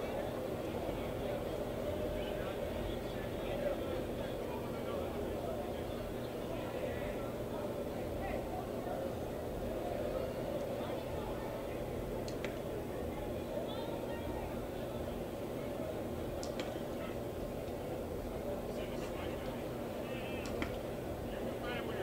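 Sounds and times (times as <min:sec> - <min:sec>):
indistinct chatter: 0:00.0 - 0:22.0
low background hum: 0:00.0 - 0:22.0.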